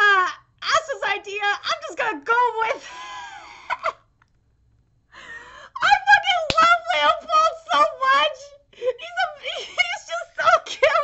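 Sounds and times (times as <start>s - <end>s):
woman laughing: 2.7s - 4.0s.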